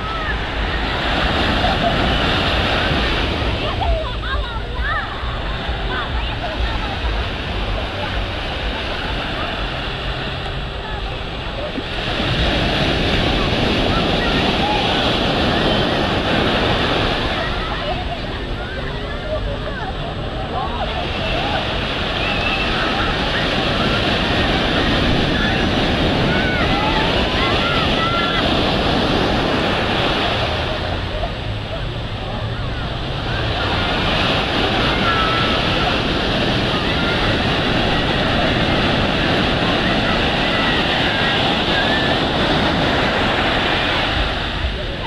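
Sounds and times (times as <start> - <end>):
distant voices and shouts: 0.0 - 45.0
surf washing onto beach: 0.0 - 45.0.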